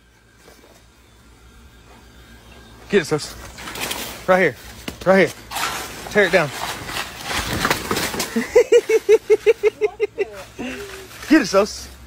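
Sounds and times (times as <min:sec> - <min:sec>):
dog tearing plant stalk and leaves: 0:04.9 - 0:08.4.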